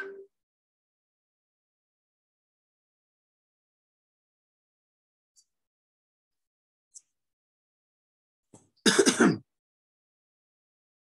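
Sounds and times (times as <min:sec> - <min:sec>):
man clearing his throat: 0:08.9 - 0:09.4.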